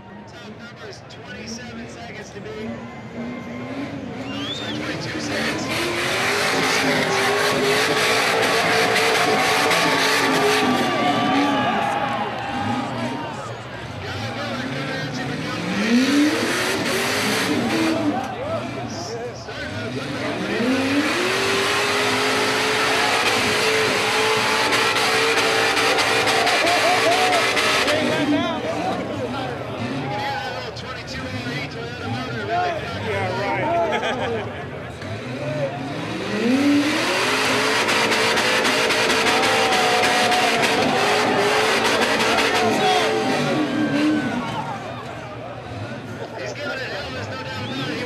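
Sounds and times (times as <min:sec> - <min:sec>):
buggy engine revving high: 0:02.7 - 0:48.0.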